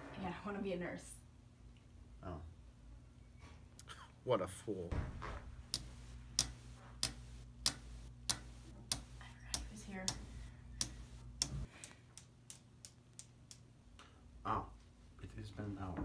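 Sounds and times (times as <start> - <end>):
clock ticking: 5.7 - 12.0.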